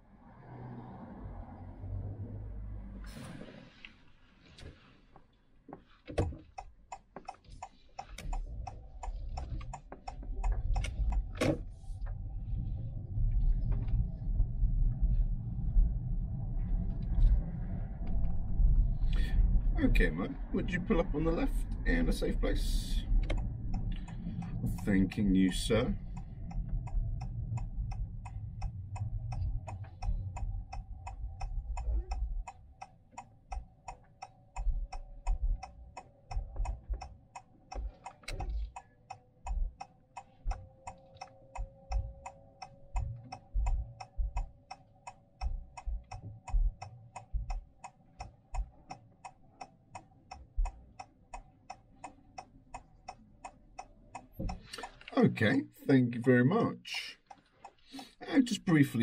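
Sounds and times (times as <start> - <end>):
road noise rumble: 0.0 - 59.0
turn signal ticking: 5.8 - 15.6, 18.0 - 59.0.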